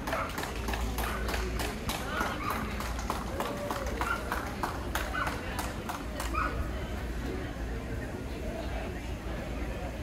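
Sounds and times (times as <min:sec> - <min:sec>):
background voices talking: 0:00.0 - 0:10.0.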